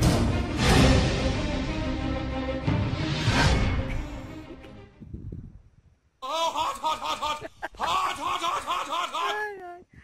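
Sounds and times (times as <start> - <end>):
person laughing: 6.2 - 9.8.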